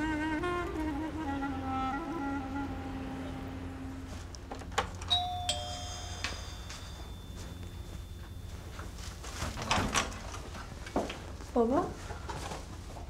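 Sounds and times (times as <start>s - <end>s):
soft background music: 0.0s - 9.5s
two-note doorbell chime: 5.1s - 9.3s.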